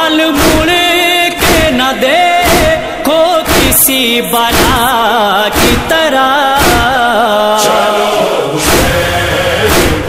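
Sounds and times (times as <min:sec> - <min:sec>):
man chanting a lament: 0:00.0 - 0:10.0
sharp thumps: 0:01.4 - 0:06.0, 0:06.6 - 0:07.0, 0:08.6 - 0:10.0.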